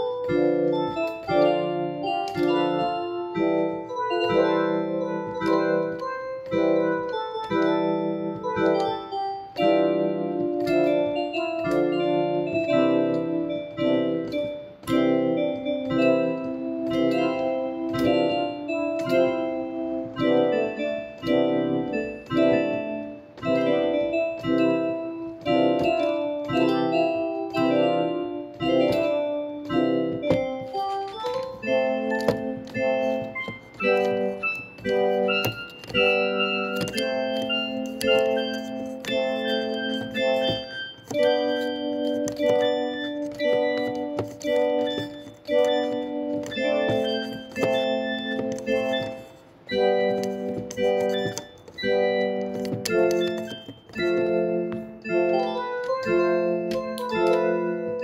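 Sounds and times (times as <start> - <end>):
piano music: 0.0 - 58.0.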